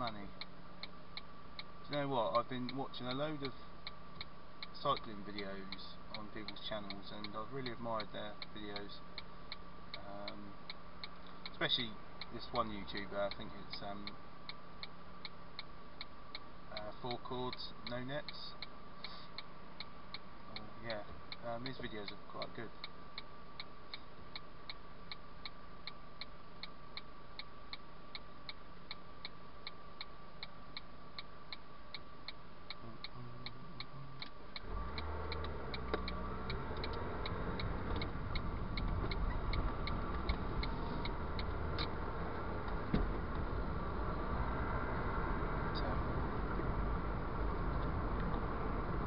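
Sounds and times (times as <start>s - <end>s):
road noise: 0.0s - 49.0s
turn-signal relay ticking: 0.0s - 49.0s
car engine idling: 32.8s - 49.0s.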